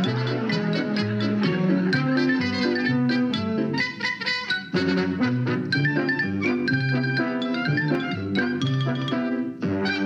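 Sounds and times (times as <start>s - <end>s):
lively band music with brass: 0.0s - 10.0s.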